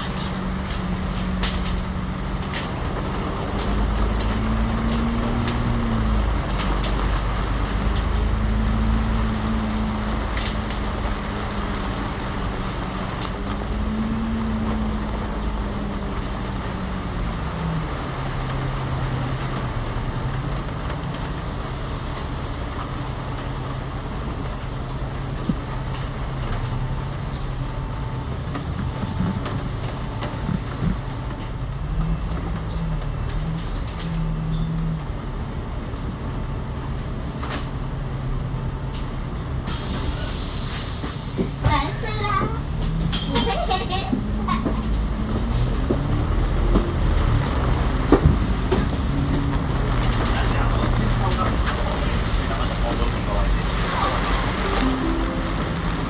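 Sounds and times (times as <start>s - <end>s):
bus diesel engine: 0.0s - 56.0s.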